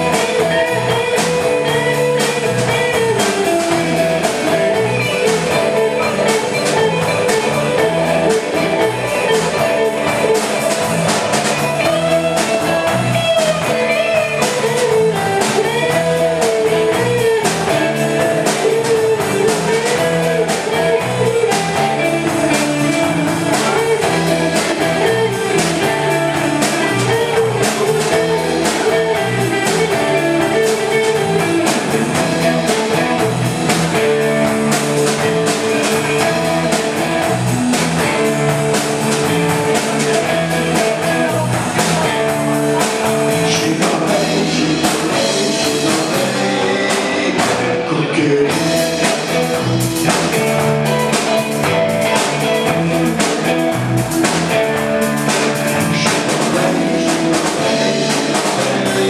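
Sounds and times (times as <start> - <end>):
lead guitar with bent notes: 0.0 - 59.0
rock band playing: 0.0 - 59.0.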